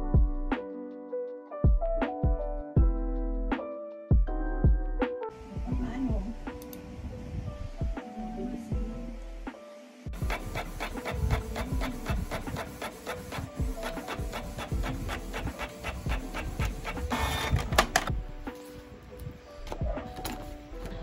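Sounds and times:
inkjet printer ticking: 0:10.2 - 0:18.1
printer whirring: 0:10.2 - 0:18.1.

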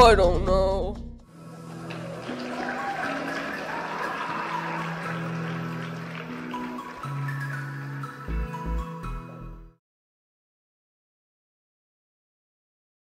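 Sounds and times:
instrumental background music: 0:00.0 - 0:09.8.

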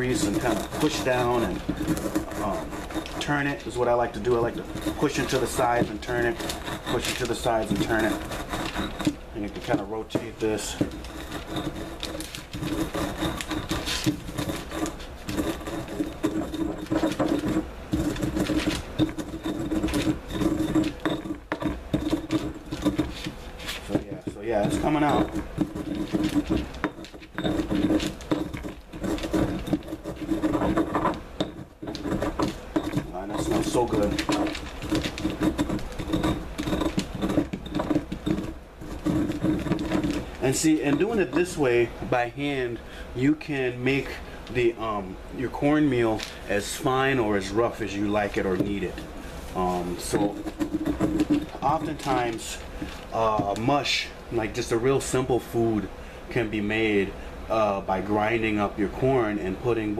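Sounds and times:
steady low hum: 0:00.0 - 0:59.9
stone pestle grinding corn: 0:00.0 - 0:59.9.

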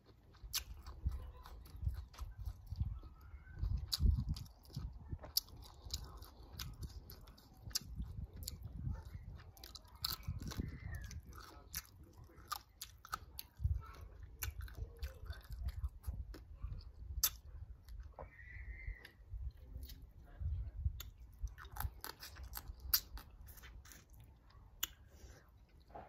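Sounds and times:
chewing and crunching food: 0:00.0 - 0:26.0.

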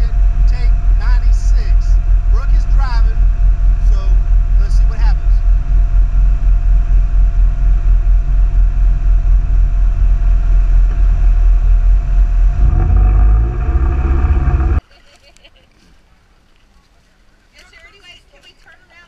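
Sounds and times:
engine idling and revving: 0:00.0 - 0:14.8.

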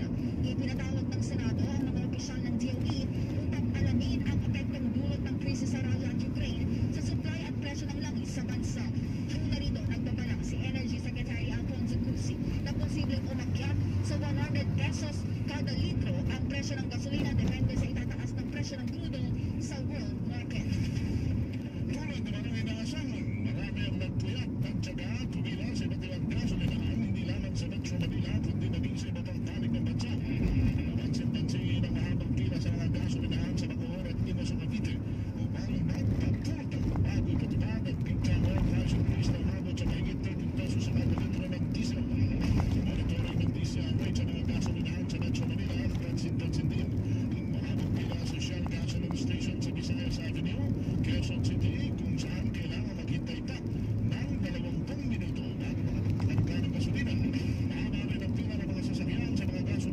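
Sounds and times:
car engine rumble: 0:00.0 - 0:59.9
road noise inside cabin: 0:00.0 - 0:59.9.

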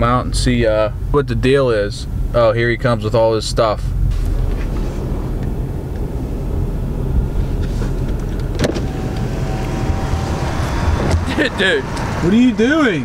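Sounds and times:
diesel truck idling: 0:00.0 - 0:13.0
power window motor whine: 0:04.1 - 0:12.2.

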